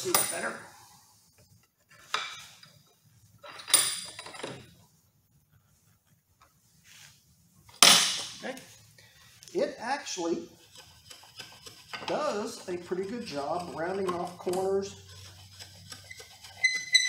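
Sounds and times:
spokeshave scraping wood: 10.2s - 17.0s.

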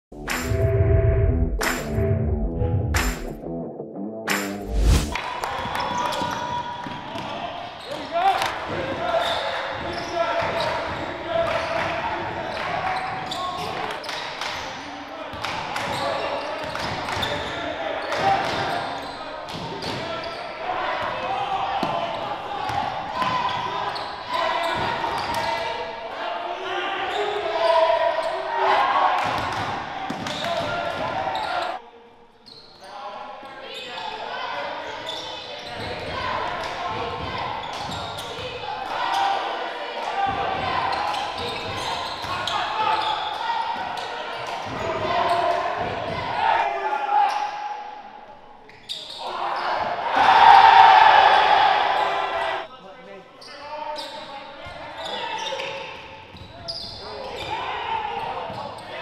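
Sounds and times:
indistinct shouts: 49.2s - 52.6s.

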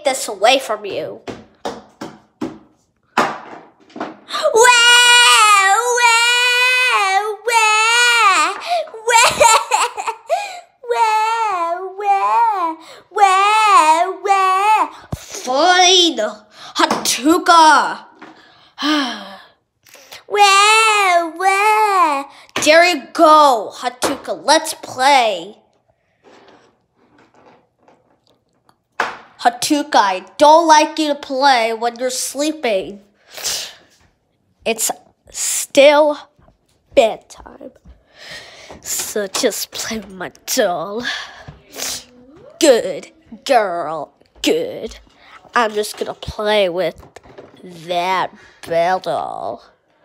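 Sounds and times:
plastic figurines set on countertop: 0.1s - 22.9s, 23.8s - 50.0s
child wailing: 4.3s - 15.0s.

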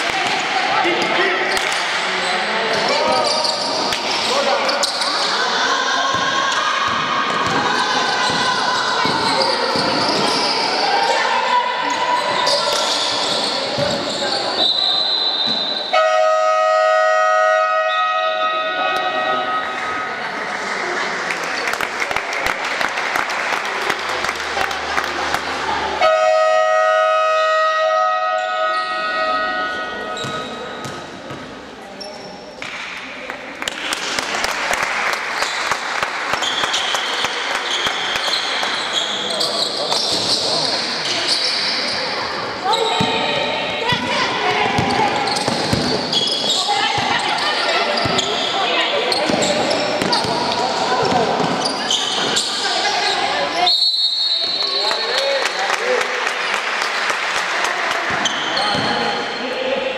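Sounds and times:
basketball bouncing: 43.0s - 46.0s.

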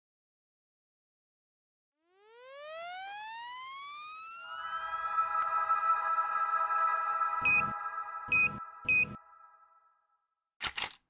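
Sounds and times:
synthesized rising tone: 2.0s - 10.1s.

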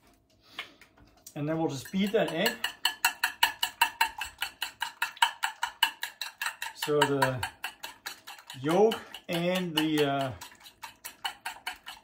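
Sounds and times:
utensil clinking against plate: 1.2s - 12.0s.

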